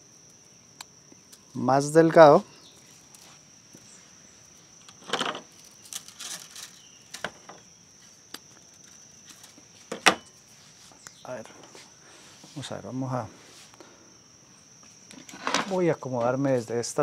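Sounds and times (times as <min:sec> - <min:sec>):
high-pitched insect call: 0:00.0 - 0:17.0
rustling and clicking of wire and branches: 0:00.2 - 0:12.7, 0:14.7 - 0:17.0.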